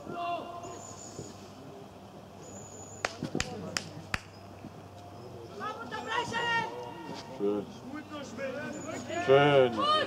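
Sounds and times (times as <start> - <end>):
distant players shouting: 5.6 - 7.2, 8.0 - 10.0.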